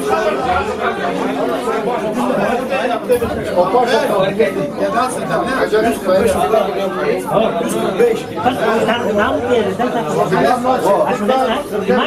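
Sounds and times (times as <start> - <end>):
men talking over one another: 0.0 - 12.0.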